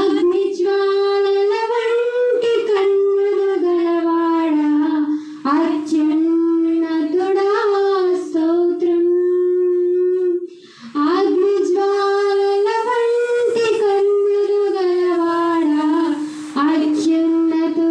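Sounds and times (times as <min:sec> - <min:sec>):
woman singing worship song: 0:00.0 - 0:17.9.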